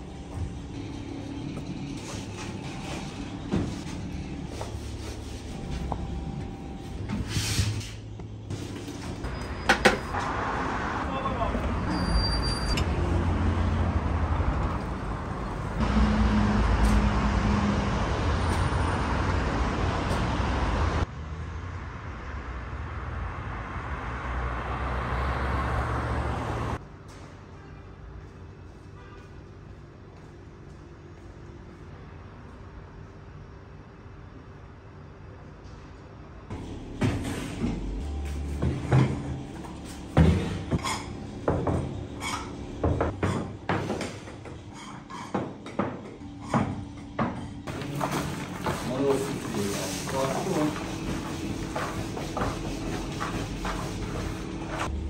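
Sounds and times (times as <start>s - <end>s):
street traffic noise: 0.0s - 55.0s
kitchen knocks and clatters: 40.2s - 49.2s.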